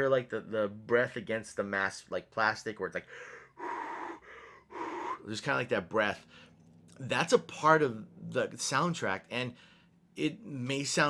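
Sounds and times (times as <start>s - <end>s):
man breathing heavily into hand: 3.1s - 5.3s.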